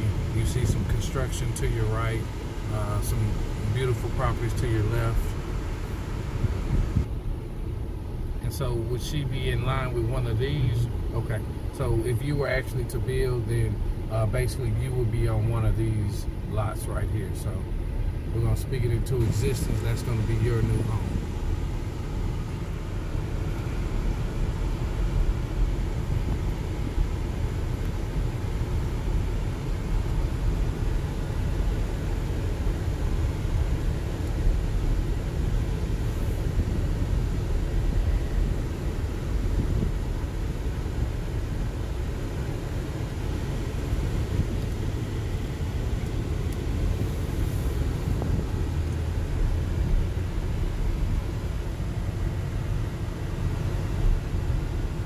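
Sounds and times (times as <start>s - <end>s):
car engine and tyre noise: 0.0s - 55.0s.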